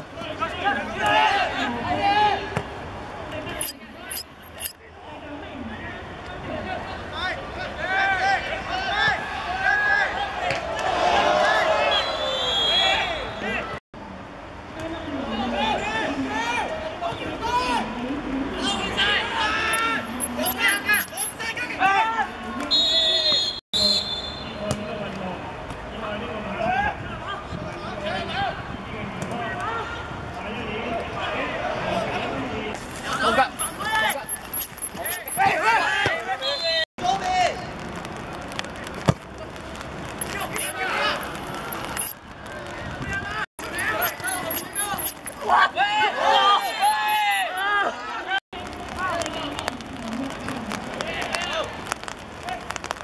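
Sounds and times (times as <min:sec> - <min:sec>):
referee's whistle blowing: 0:11.9 - 0:13.5, 0:19.7 - 0:21.4, 0:22.7 - 0:24.6, 0:33.6 - 0:35.5, 0:43.7 - 0:45.4, 0:46.5 - 0:47.7
players' voices calling: 0:19.4 - 0:21.9, 0:33.0 - 0:36.8, 0:40.2 - 0:42.1, 0:43.6 - 0:48.0
loud high-pitched shouting voices: 0:43.7 - 0:48.1.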